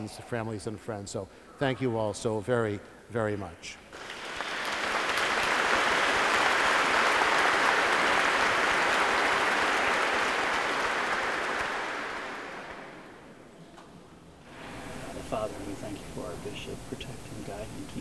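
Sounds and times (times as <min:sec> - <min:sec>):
congregation applauding: 0:03.9 - 0:13.4, 0:14.5 - 0:18.0.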